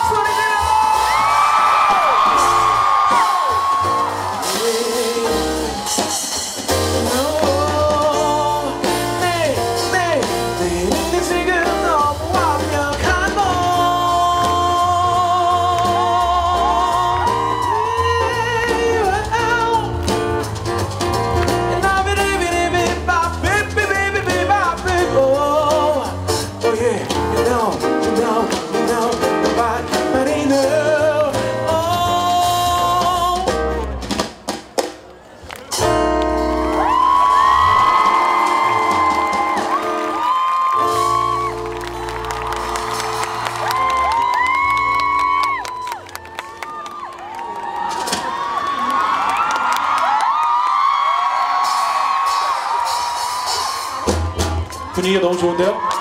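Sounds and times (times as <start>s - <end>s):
live band playing: 0.0s - 50.5s, 51.2s - 56.0s
person singing: 3.9s - 20.2s, 21.6s - 33.8s.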